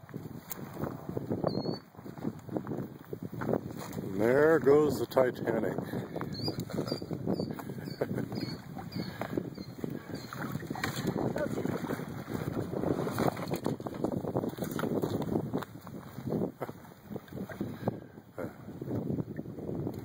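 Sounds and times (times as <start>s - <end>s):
wind noise on microphone: 0.0s - 20.0s.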